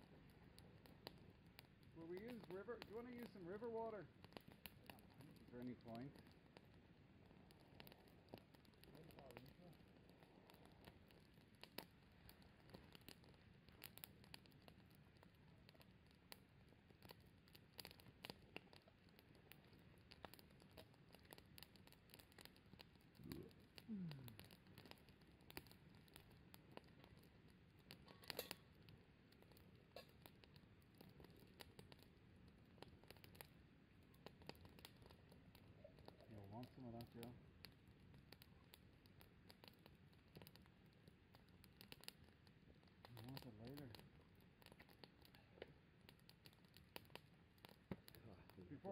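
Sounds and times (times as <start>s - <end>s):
campfire crackling: 0.0s - 48.9s.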